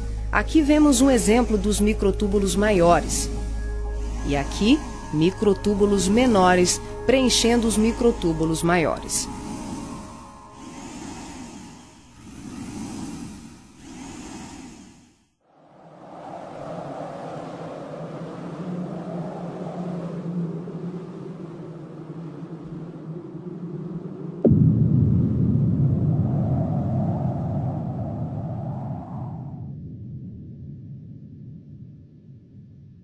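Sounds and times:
low rumbling drone: 0:00.0 - 0:15.1, 0:20.6 - 0:33.0
whooshes: 0:01.3 - 0:21.1
loud boom: 0:24.4 - 0:28.5.

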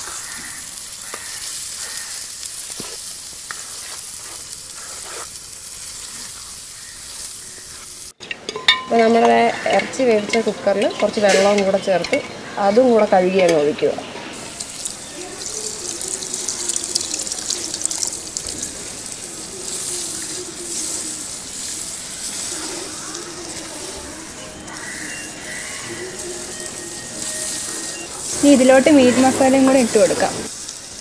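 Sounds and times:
food sizzling in a pot: 0:00.0 - 0:31.0.

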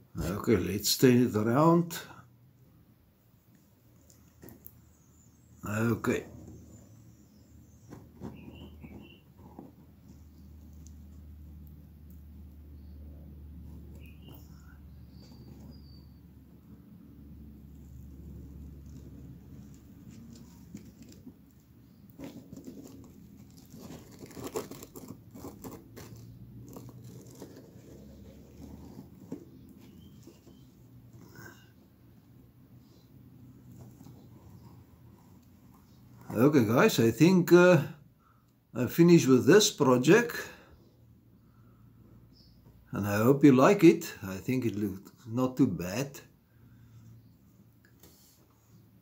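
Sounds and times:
handling rustling: 0:17.6 - 0:31.5.

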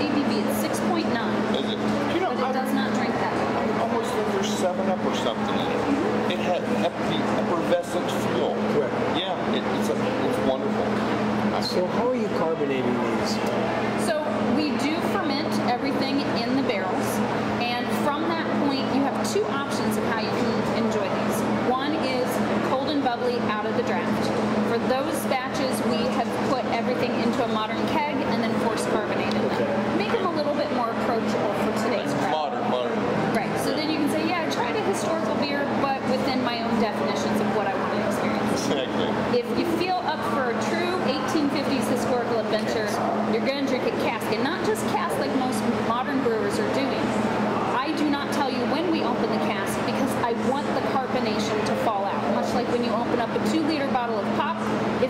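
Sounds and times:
woman talking: 0:00.0 - 0:03.7, 0:14.0 - 0:32.2, 0:33.3 - 0:38.7, 0:39.3 - 0:55.0
people in conversation: 0:00.0 - 0:55.0
steady low hum: 0:00.0 - 0:55.0.

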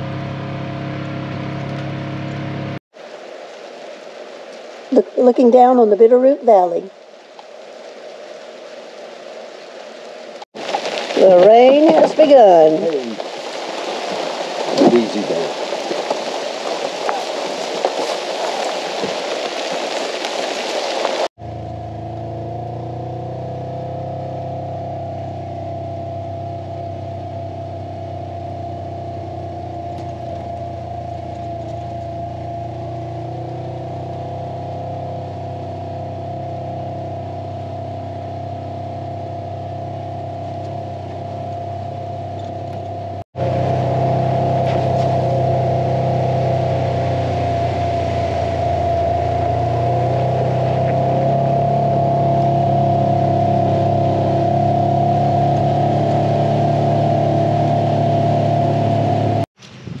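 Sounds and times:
vehicle engine hum with whine: 0:00.0 - 0:03.1, 0:10.6 - 1:00.0.

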